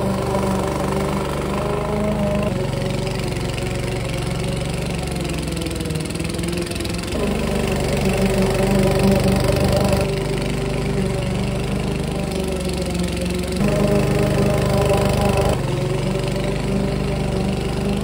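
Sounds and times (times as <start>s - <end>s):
lawn mower cutting grass: 0.0s - 18.0s.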